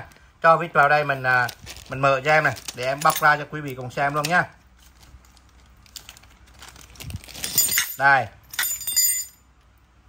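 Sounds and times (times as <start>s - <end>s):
metal tool parts clicking: 7.4s - 9.4s.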